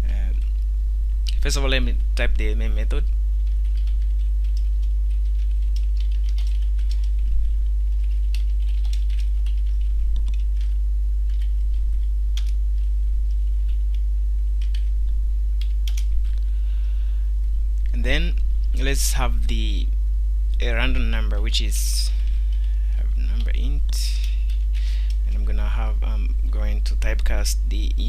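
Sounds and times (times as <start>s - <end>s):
loud steady low hum: 0.0s - 28.0s
computer keyboard typing: 3.5s - 14.0s, 14.6s - 14.9s, 15.6s - 16.4s.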